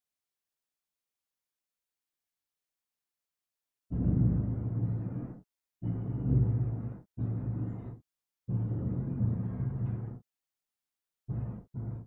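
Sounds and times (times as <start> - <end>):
muffled film soundtrack: 4.0 - 10.2.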